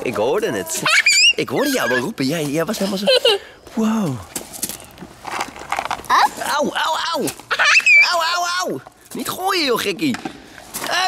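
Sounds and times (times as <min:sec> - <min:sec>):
footsteps on gravel: 0:02.1 - 0:11.0
short scuffs and clicks: 0:04.3 - 0:06.6.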